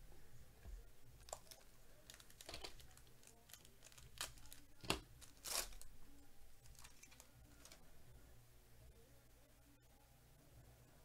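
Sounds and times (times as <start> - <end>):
foil wrapper crinkling: 1.2 - 5.9, 6.6 - 7.8.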